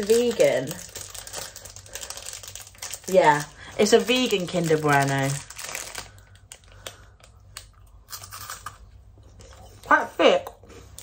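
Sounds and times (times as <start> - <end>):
person crunching wafer bar: 0.0 - 3.6, 4.4 - 8.8.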